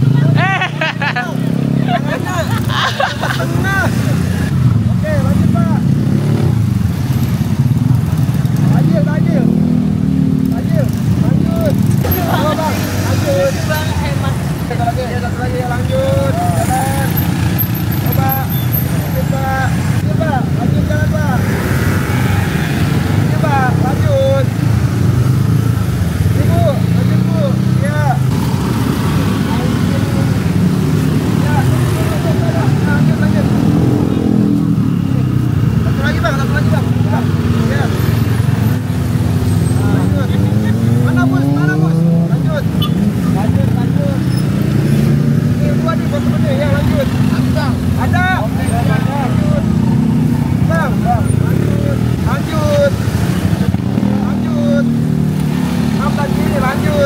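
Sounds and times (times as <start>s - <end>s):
people talking: 0.0s - 4.2s, 10.4s - 17.3s, 18.0s - 21.5s, 29.2s - 30.6s, 31.3s - 34.3s, 35.9s - 38.0s, 39.8s - 44.3s, 45.6s - 49.7s, 50.6s - 53.0s, 54.0s - 54.9s, 56.0s - 57.0s
scooter and car engines passing: 0.0s - 57.0s.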